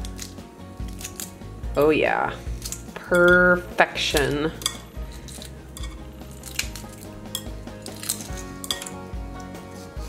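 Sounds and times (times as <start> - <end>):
eggshell crackling as peeled: 0.0 - 3.5, 4.1 - 9.5.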